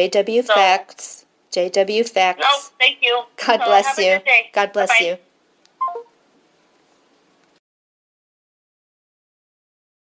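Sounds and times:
person saying bye on phone: 0.5 - 0.8, 2.4 - 5.2.

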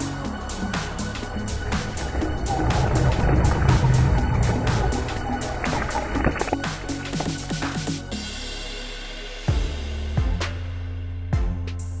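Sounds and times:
electronic music with steady beat: 0.0 - 10.7.

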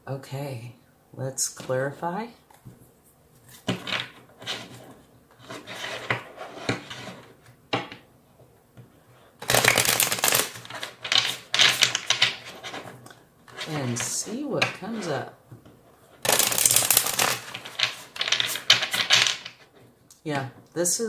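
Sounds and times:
tarot cards being shuffled: 9.4 - 15.2, 16.2 - 19.7.

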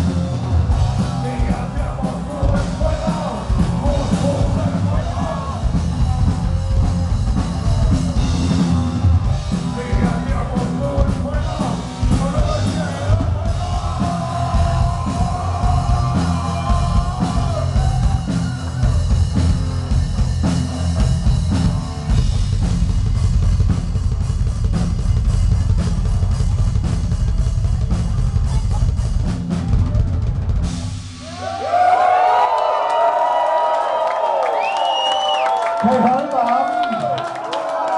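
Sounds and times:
crowd cheering and shouting: 0.0 - 23.0, 25.2 - 37.9
heavy metal band playing: 0.0 - 32.5.

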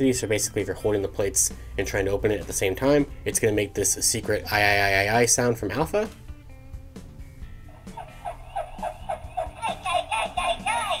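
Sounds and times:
toy speaker yelping cry: 7.8 - 11.0.

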